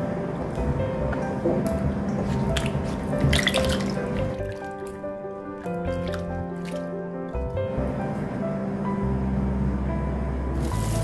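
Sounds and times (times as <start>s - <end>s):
background music: 0.0s - 11.0s
water splashing and dripping: 2.4s - 6.9s.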